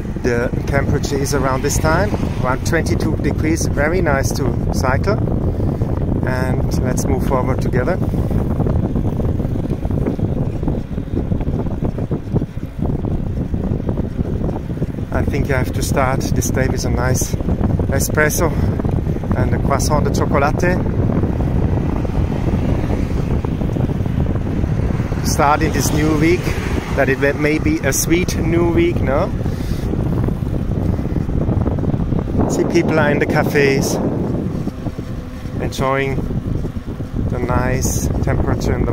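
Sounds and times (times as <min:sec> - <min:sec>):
wind buffeting microphone: 0:00.0 - 0:38.9.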